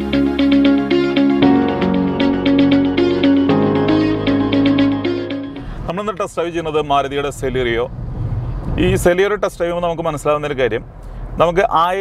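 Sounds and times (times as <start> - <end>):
car engine and road drone: 0.0 - 8.9
man talking: 5.9 - 7.9, 8.8 - 12.0.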